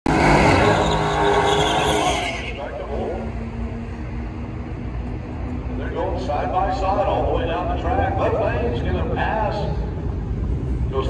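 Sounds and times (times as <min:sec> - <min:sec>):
loud car engine: 0:00.0 - 0:07.9
car engines idling: 0:00.1 - 0:11.0.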